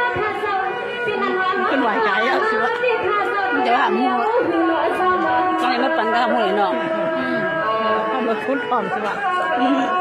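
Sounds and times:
woman speaking through microphone: 0.0s - 10.0s.

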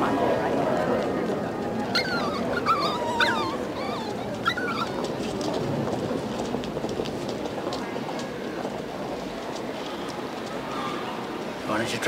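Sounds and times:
puppies whimpering and yipping: 1.9s - 5.1s.

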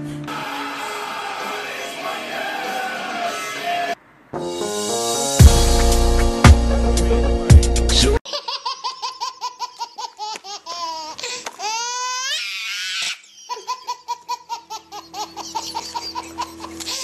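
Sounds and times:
high-pitched laughter: 8.3s - 17.0s.

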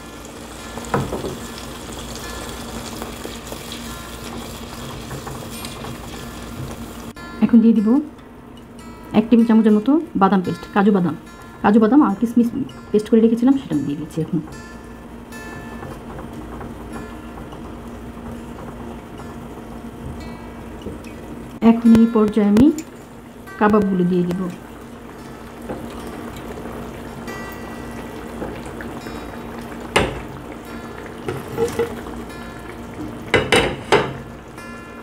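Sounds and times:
gravy bubbling in a pot: 0.0s - 7.2s, 15.0s - 35.0s
background music: 5.9s - 35.0s.

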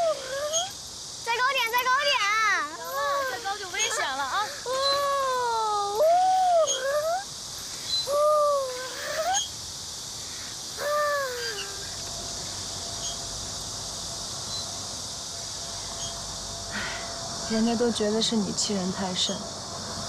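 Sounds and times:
faint steady hiss: 0.0s - 20.0s
child calling out: 1.3s - 7.3s, 8.1s - 9.4s, 10.8s - 11.9s.

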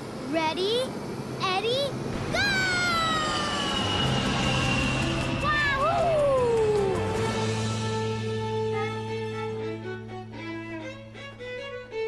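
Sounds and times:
cartoon child shouting: 2.2s - 3.8s, 5.4s - 7.0s.

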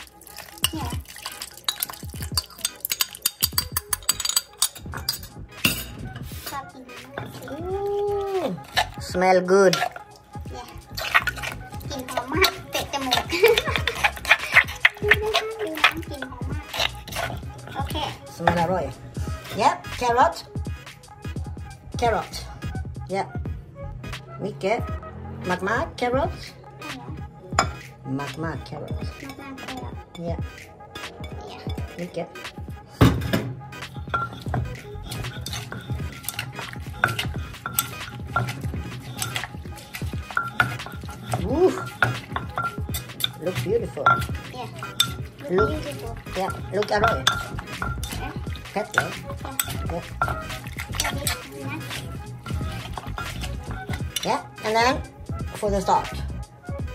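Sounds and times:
metal spoon scraping a mortar: 0.0s - 19.8s, 34.0s - 56.2s.

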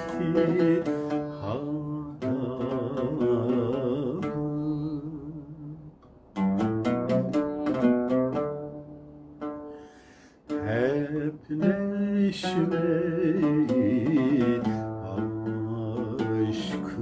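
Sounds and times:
man singing: 0.0s - 6.0s, 10.5s - 17.0s
oud plucked: 0.0s - 17.0s.

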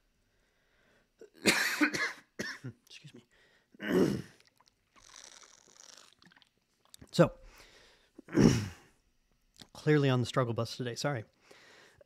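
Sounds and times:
person coughing: 1.4s - 2.8s, 3.8s - 4.4s, 8.3s - 8.8s.

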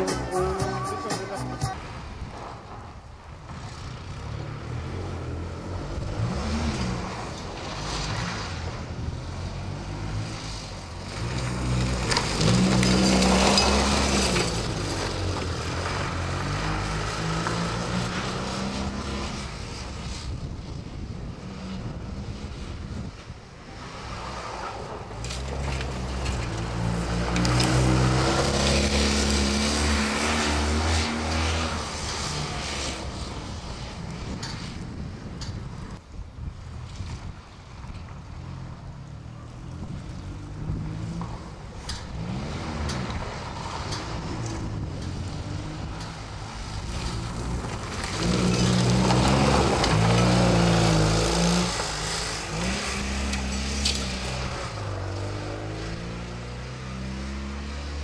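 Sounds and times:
small car engine revving: 3.5s - 20.4s, 24.0s - 34.6s, 39.7s - 58.0s.

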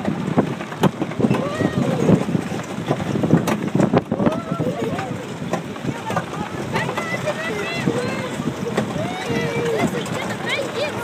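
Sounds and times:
ride train rumbling: 0.0s - 11.0s
wind noise on microphone: 0.0s - 11.0s
children chattering and squealing: 1.2s - 2.3s, 4.1s - 11.0s.

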